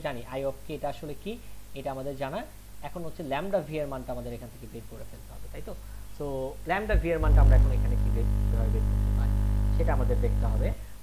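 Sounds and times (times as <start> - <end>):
electrical mains hum: 4.2 - 11.0.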